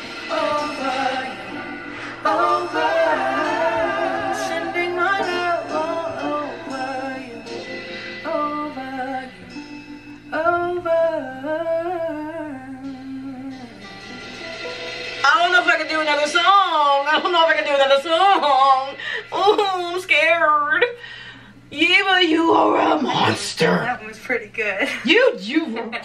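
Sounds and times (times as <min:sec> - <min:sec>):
woman singing: 0:00.0 - 0:07.6, 0:08.2 - 0:13.9, 0:15.2 - 0:21.0, 0:21.7 - 0:23.1
quiet musical accompaniment: 0:00.0 - 0:26.0.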